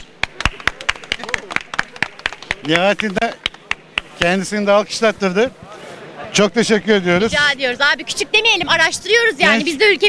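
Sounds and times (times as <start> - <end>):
people clapping: 0.0 - 4.3.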